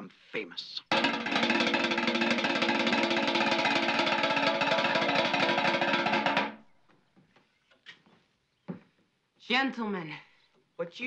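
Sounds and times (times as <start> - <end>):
drum roll on metal tub: 0.9 - 6.6.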